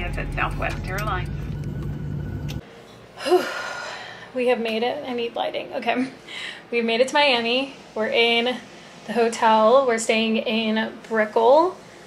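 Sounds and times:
airliner cabin drone: 0:00.0 - 0:02.6.

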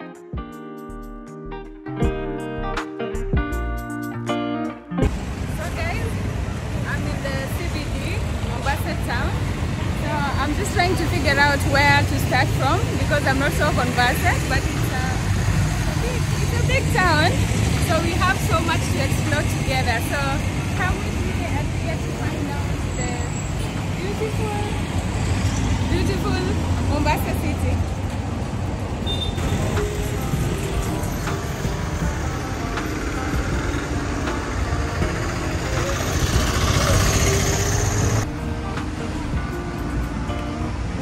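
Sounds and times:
music with held notes: 0:00.0 - 0:05.1, 0:29.4 - 0:41.0
street traffic: 0:01.8 - 0:41.0.

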